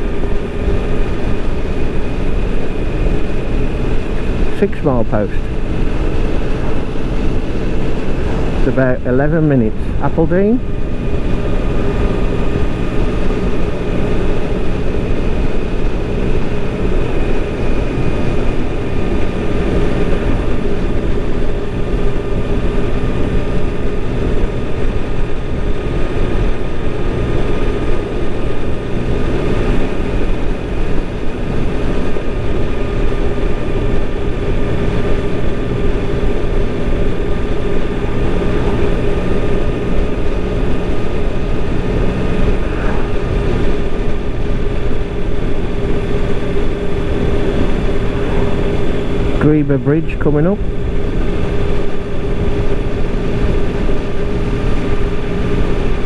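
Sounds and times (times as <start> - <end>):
road and wind noise: 0.0 - 56.0
vehicle engine drone: 0.0 - 56.0.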